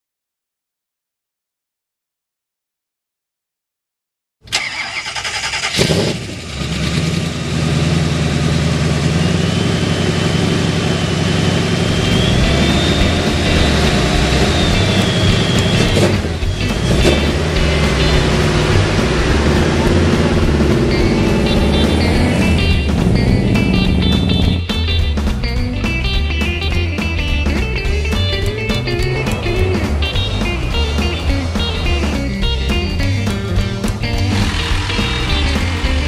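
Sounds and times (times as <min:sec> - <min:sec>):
vehicle engine starting and running: 0:04.4 - 0:36.0
music: 0:11.8 - 0:36.0.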